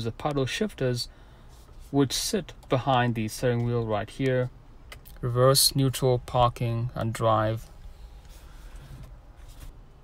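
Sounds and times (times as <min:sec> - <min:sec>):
rustling and tapping on controls: 0:01.5 - 0:05.4, 0:07.0 - 0:10.0.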